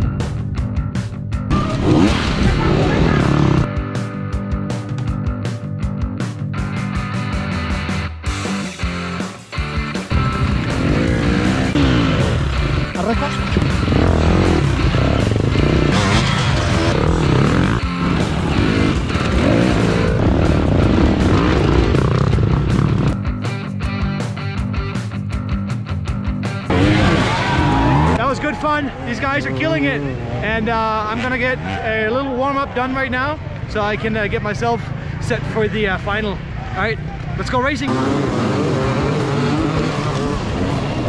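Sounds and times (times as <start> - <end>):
background music: 0.0 - 36.6, 37.8 - 41.0
dirt bike engines revving: 1.5 - 3.8, 10.0 - 23.2, 26.6 - 41.0.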